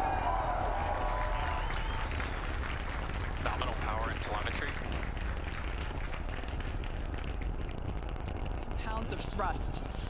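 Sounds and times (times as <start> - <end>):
rocket engines rumbling: 0.0 - 10.0.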